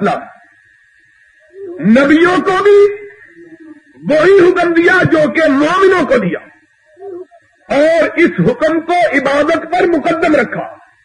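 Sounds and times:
man preaching through microphones: 0.0 - 0.4, 1.8 - 3.2, 4.0 - 6.5, 7.7 - 10.8
faint steady high tone: 0.0 - 11.0.

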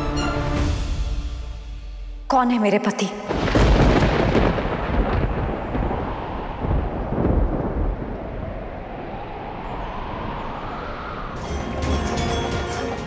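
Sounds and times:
deep rumbling booms: 3.3 - 8.8.

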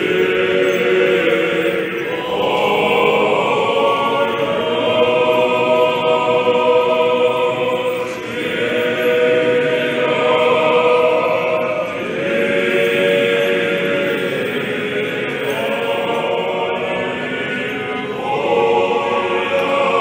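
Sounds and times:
choir chanting sustained chords: 0.0 - 20.0.

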